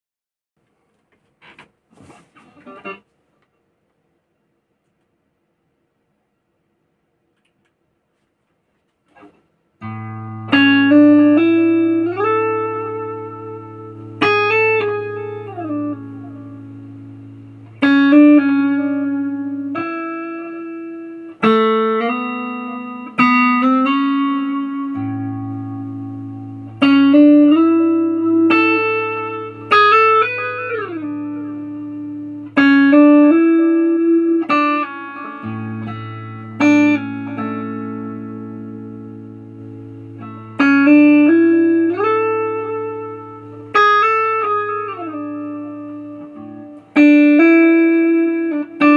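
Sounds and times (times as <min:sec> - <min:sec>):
clean electric guitar: 0:02.4 - 0:03.1, 0:09.1 - 0:48.9.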